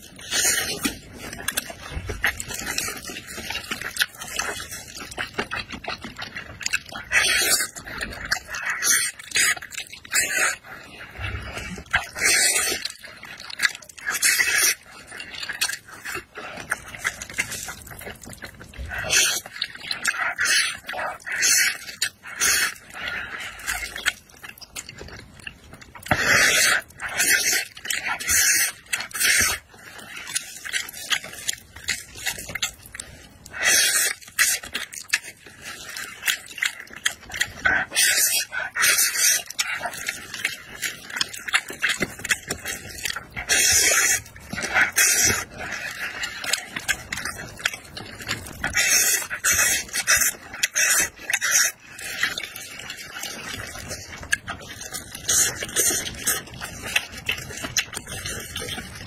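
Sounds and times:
wet chewing: 0:00.0 - 0:59.0
person slurping noodles: 0:06.1 - 0:24.3, 0:26.0 - 0:59.0.

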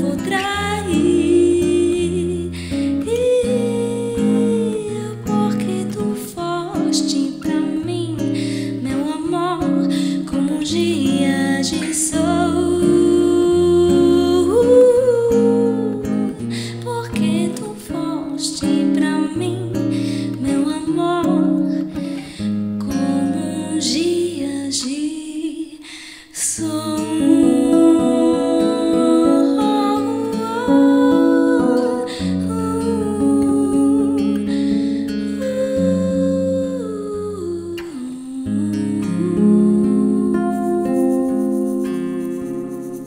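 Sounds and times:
guitar chords: 0:00.0 - 0:25.6, 0:26.6 - 0:43.0
woman singing wordless melody: 0:00.0 - 0:43.0.

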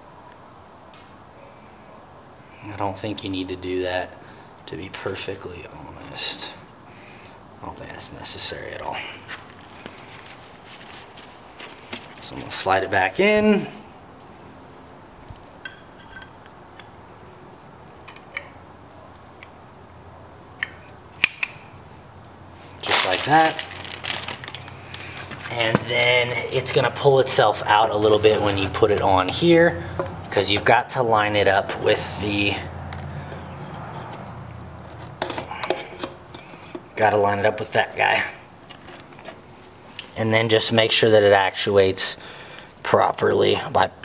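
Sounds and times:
small metal clicks and knocks: 0:15.6 - 0:17.0, 0:18.0 - 0:18.6, 0:33.8 - 0:37.0
light metallic clicks and taps: 0:17.6 - 0:19.6.

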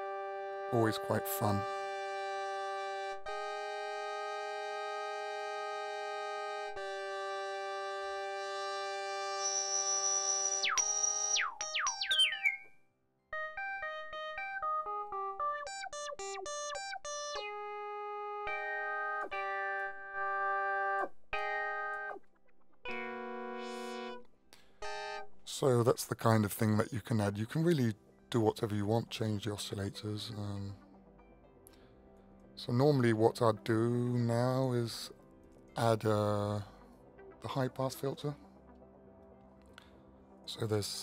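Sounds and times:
synthesizer chords and notes: 0:00.0 - 0:12.7, 0:13.3 - 0:25.9, 0:27.7 - 0:41.0.

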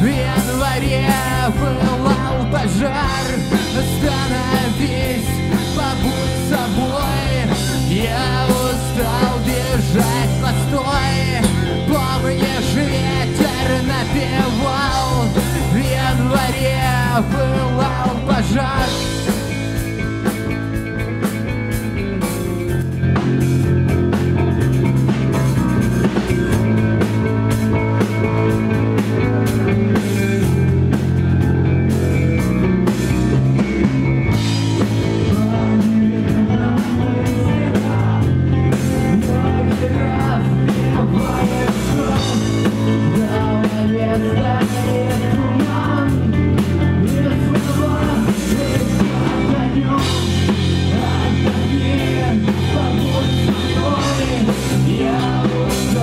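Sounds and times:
drum and cymbal hits: 0:00.0 - 0:36.1
bass guitar: 0:00.0 - 0:56.0
electric guitar: 0:00.0 - 0:56.0
rock band playing: 0:00.0 - 0:56.0.

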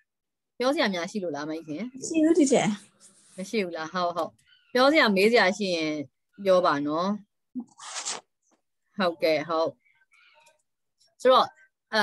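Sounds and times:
woman talking over video call: 0:00.6 - 0:07.7.

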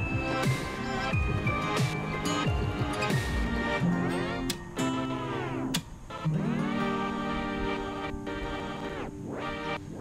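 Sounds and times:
guitar-led background music: 0:00.0 - 0:10.0.

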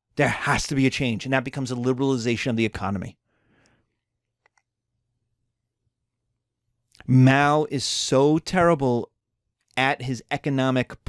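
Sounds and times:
person speaking: 0:00.1 - 0:03.2, 0:06.9 - 0:11.0
faint intake of breath: 0:03.2 - 0:04.0
faint small clicks: 0:03.6 - 0:04.8.

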